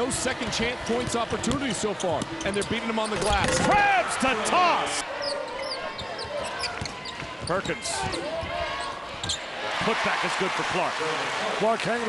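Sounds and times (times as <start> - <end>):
arena crowd noise: 0.0 - 12.0
sneakers squeaking on floor: 5.2 - 9.5.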